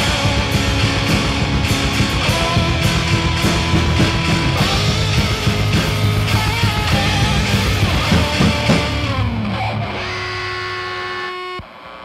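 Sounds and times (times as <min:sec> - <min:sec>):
distorted electric guitar note ringing: 0:00.0 - 0:12.0.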